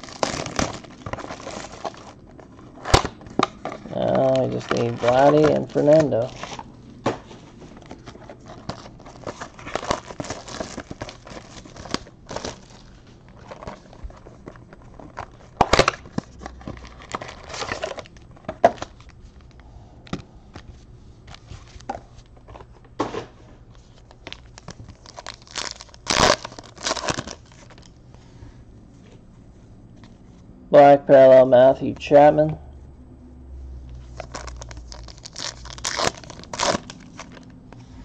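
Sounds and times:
wrapper crinkling and tearing: 0.0 - 6.7, 7.7 - 19.5, 23.9 - 28.0, 34.0 - 37.6
cardboard and cards handled: 0.0 - 27.9.

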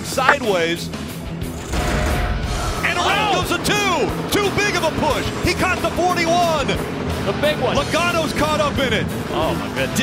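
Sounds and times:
background music: 0.0 - 10.0
race car engines droning: 2.4 - 10.0.

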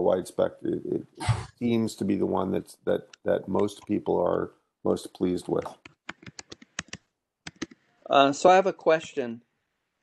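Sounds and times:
typing on computer keyboard: 5.7 - 7.8.

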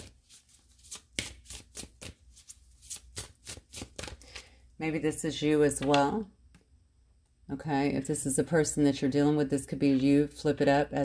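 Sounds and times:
cards being shuffled: 0.0 - 4.5.

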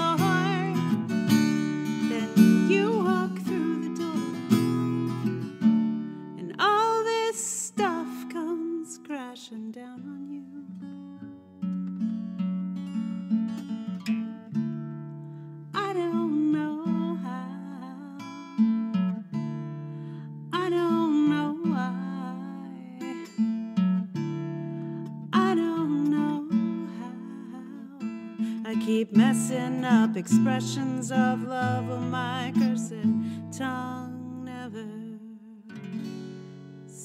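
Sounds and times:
acoustic guitar chords: 0.0 - 37.0.

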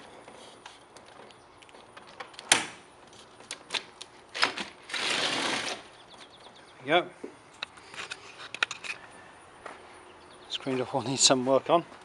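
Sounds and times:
screen door sliding on track: 4.4 - 5.9.

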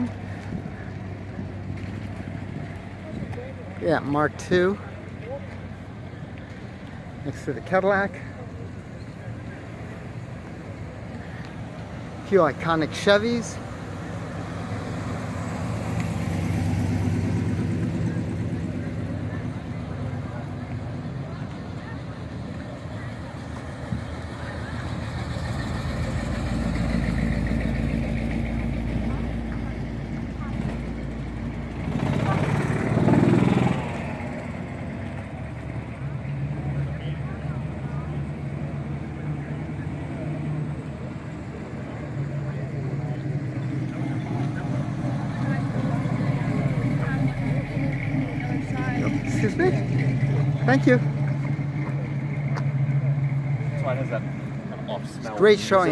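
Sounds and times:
car engines passing slowly: 0.0 - 55.9
voices: 0.0 - 55.9.

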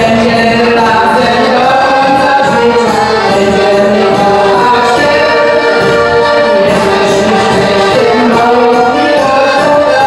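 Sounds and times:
accordion folk dance music: 0.0 - 10.0
person singing: 0.0 - 10.0.

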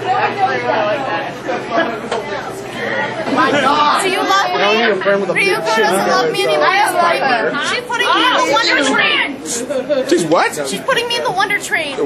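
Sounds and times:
people talking over one another: 0.0 - 9.6.

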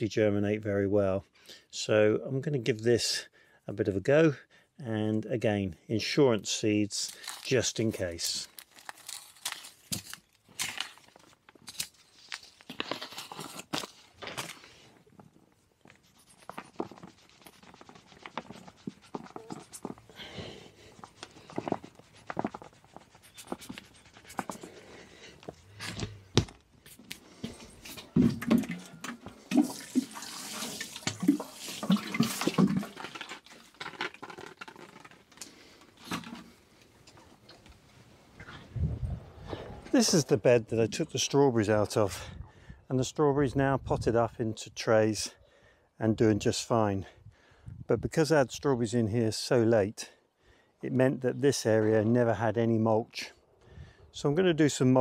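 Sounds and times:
hands rustling compost: 7.0 - 28.2.

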